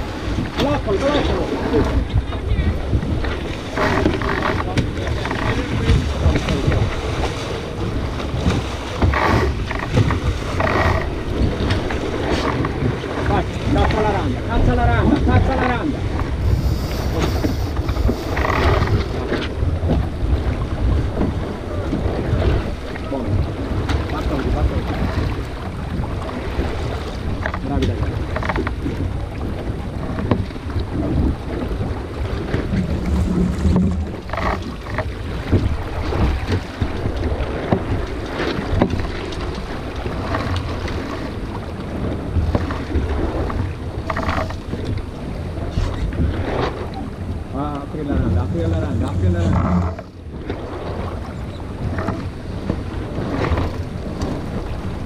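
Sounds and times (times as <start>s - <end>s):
water rushing along a hull: 0.0s - 55.0s
wind buffeting microphone: 0.0s - 55.0s
steady low rumble: 31.0s - 36.0s, 47.3s - 50.4s.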